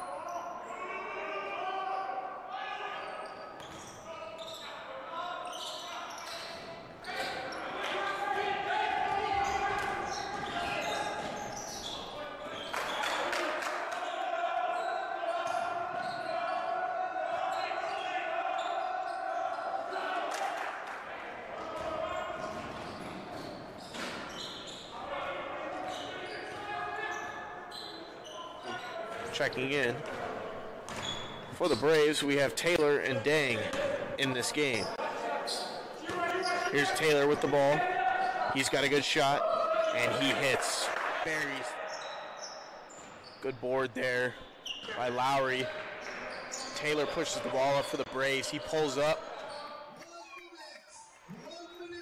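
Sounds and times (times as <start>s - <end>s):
voices calling out echoing: 0.0s - 52.0s.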